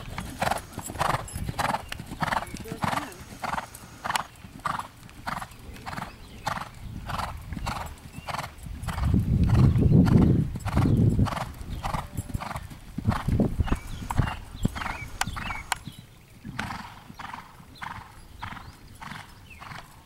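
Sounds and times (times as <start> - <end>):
horse hoofbeats on sand: 0.0 - 15.7.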